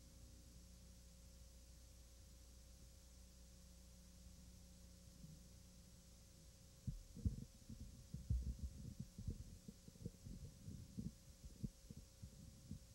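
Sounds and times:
faint steady hum: 0.0 - 12.9
thumps on microphone: 6.9 - 12.9.

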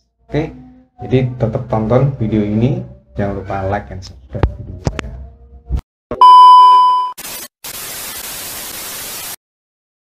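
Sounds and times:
high test-tone beep: 6.2 - 7.2
tv static hiss: 7.2 - 9.4.

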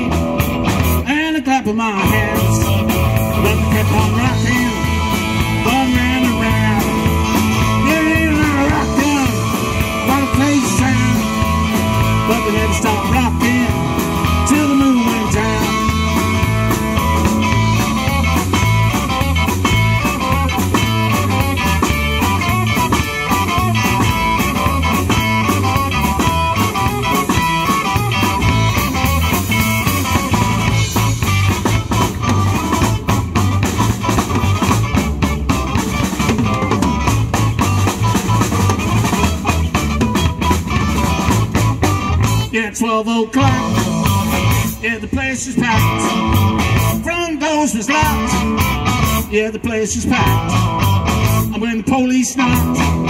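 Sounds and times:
drum kit beat: 0.0 - 1.1, 2.0 - 42.6, 43.4 - 49.4, 50.0 - 51.7, 52.4 - 53.0
electric guitars: 0.0 - 53.0.

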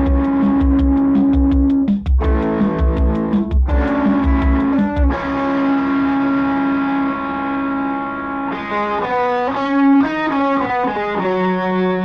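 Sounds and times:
guitar chord ringing out: 0.0 - 12.0
rock band music: 0.0 - 12.0.

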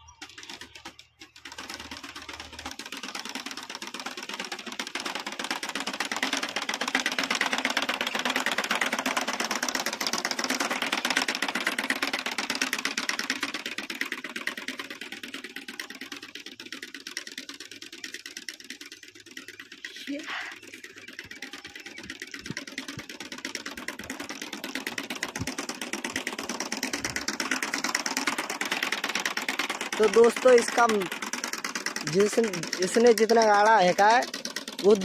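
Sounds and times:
seed planter clicking and rattling: 0.0 - 35.0.

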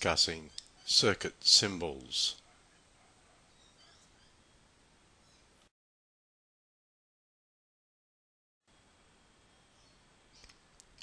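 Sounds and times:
faint short clicks: 10.4 - 11.0.

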